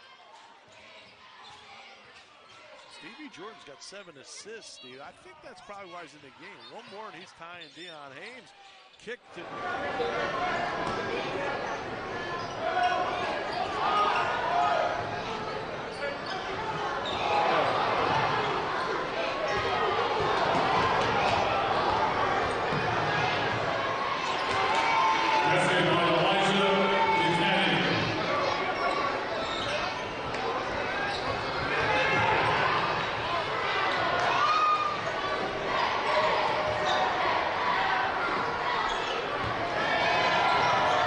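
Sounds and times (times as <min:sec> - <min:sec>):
crowd noise: 0:00.0 - 0:41.0.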